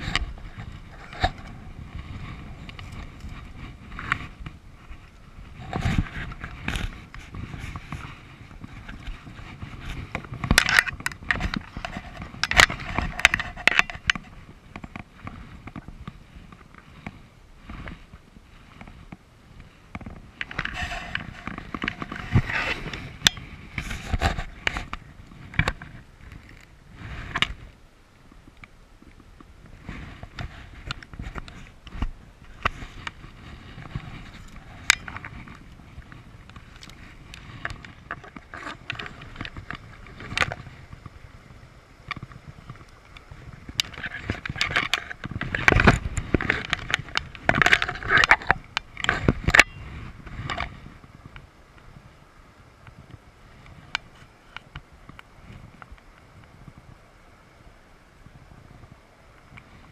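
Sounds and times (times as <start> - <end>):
fishing gear clicks and knocks: 0.0 - 27.7, 28.4 - 51.8.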